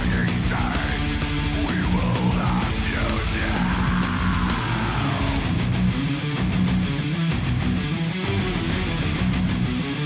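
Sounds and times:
backing track with drums: 0.0s - 10.0s
distorted electric guitar riff: 0.0s - 10.0s.

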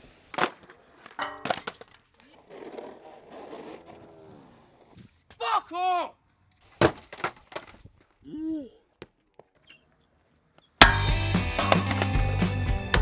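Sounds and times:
skateboard clacking on concrete: 0.4s - 3.4s
person shouting: 5.4s - 6.2s
loud guitar music: 10.8s - 13.0s.

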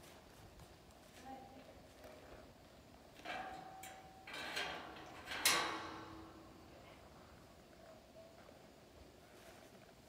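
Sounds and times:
metal gate rattling and clanking: 3.2s - 6.6s.

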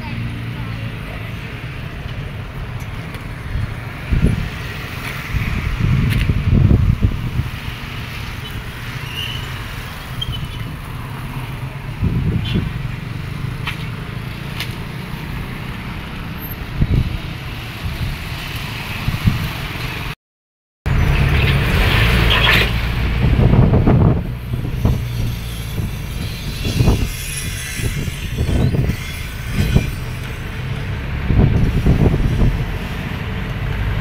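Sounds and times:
cars and trucks passing: 0.0s - 20.2s, 20.9s - 34.0s
wind buffeting microphone: 2.6s - 8.8s, 11.8s - 13.5s, 16.6s - 19.8s, 21.5s - 34.0s.

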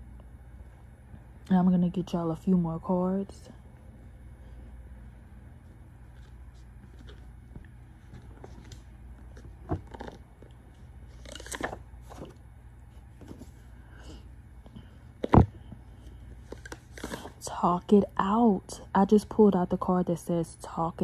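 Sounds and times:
steady low hum: 0.0s - 21.0s
cards clicking and rustling: 6.1s - 10.5s, 11.1s - 12.4s, 16.4s - 17.3s.

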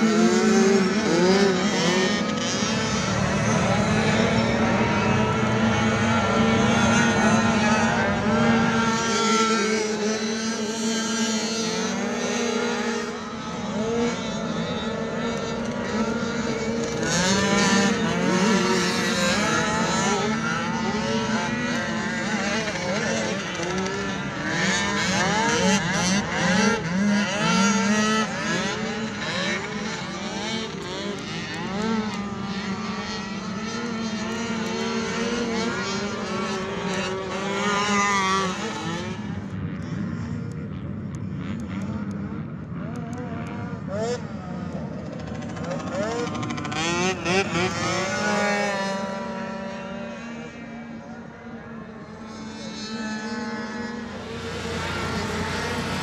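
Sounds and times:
atv engines revving: 0.0s - 40.8s, 41.4s - 56.0s.

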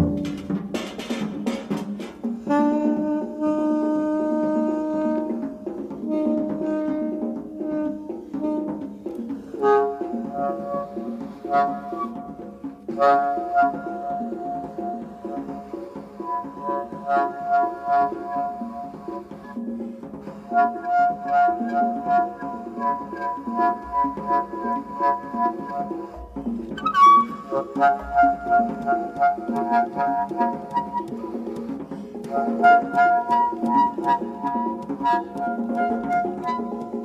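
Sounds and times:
percussion taps and clicks: 0.0s - 3.1s, 20.1s - 37.0s
horn holding long notes: 2.5s - 8.9s, 9.6s - 19.5s, 20.2s - 37.0s.

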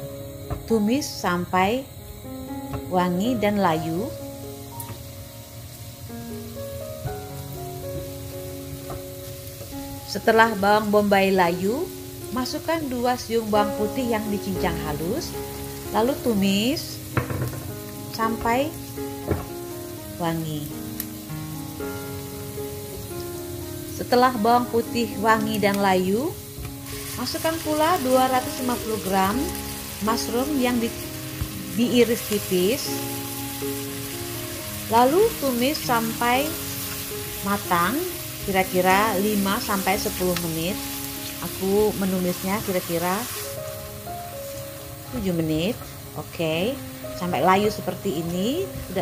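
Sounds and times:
background music with held notes: 0.0s - 49.0s
onion and garlic sizzling in oil: 0.0s - 49.0s.

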